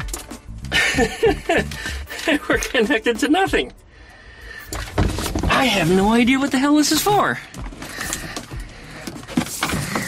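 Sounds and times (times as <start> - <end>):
wires rustling and scraping: 4.5 - 10.0.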